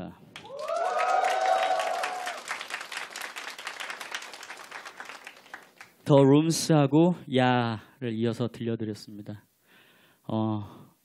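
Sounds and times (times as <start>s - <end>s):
audience clapping: 0.3s - 6.0s
whoops and shouts: 0.4s - 2.5s.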